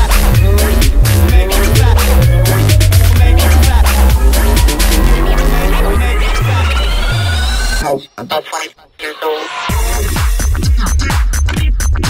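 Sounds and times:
electro house dance music: 0.0s - 12.0s.

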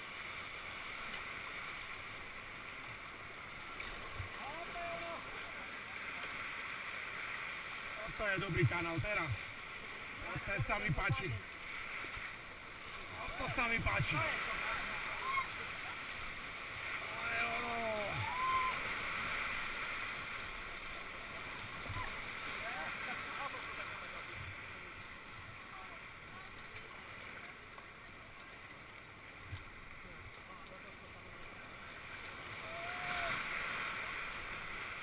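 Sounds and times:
whitewater rushing: 0.0s - 26.4s, 29.7s - 35.0s
people shouting: 17.2s - 18.9s, 32.6s - 33.4s.

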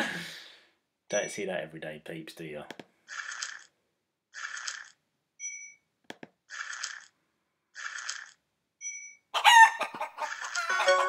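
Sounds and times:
rooster crowing sound effect: 9.4s - 11.0s.

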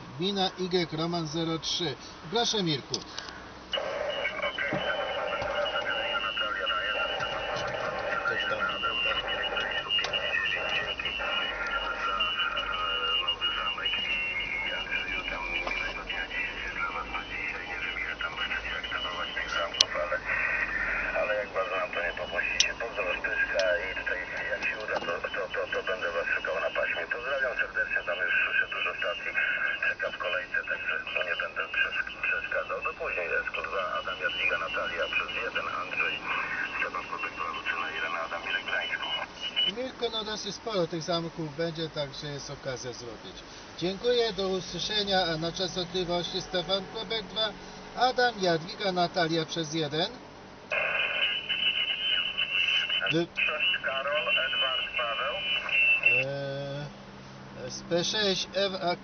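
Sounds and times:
radio noise hiss: 0.0s - 59.0s
tinny radio speech: 3.8s - 57.0s.

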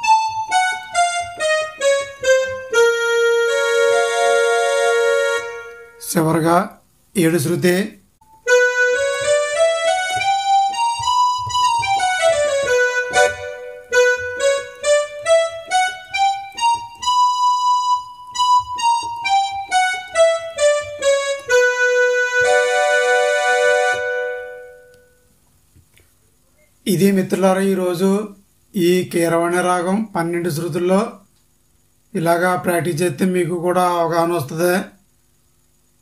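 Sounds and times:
keyboard playing a scale: 0.0s - 6.1s, 8.2s - 25.2s.

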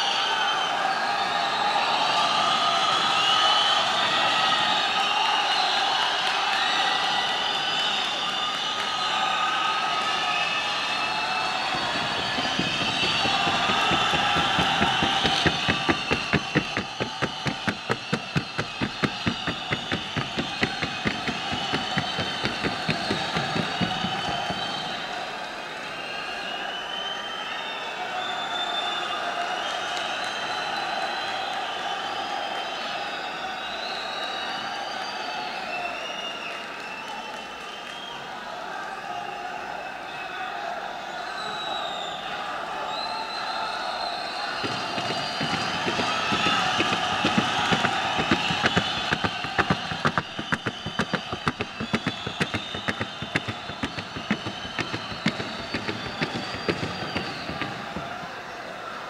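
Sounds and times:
hoofbeats on wooden board: 11.6s - 25.2s, 44.6s - 58.4s.

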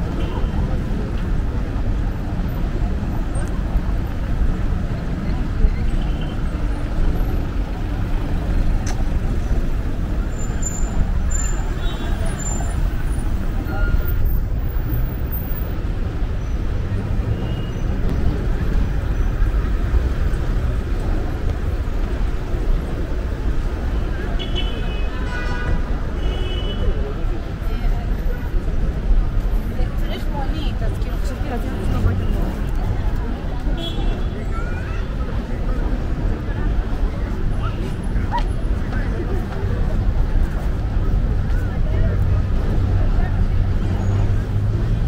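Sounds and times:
cars driving on cobblestones: 0.0s - 45.0s.

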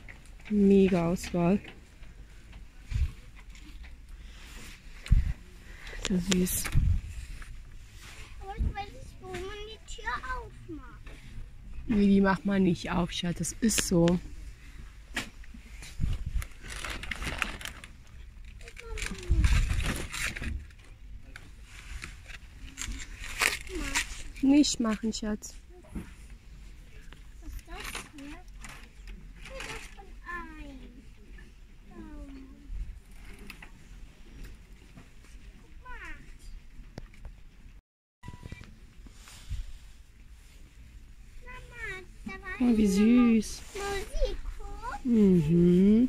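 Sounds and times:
plastic boxes rustling and scraping: 13.1s - 26.7s.

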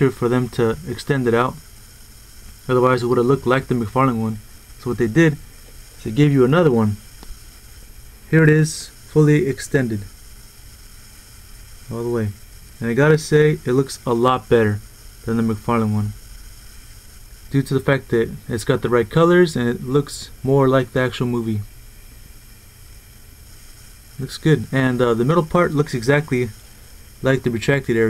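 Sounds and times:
faint hum: 0.0s - 28.0s
low hiss: 0.0s - 28.0s.

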